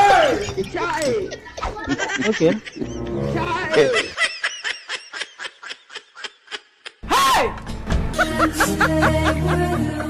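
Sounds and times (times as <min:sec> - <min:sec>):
breathy snickering laughter: 0:03.9 - 0:07.0, 0:08.2 - 0:10.0.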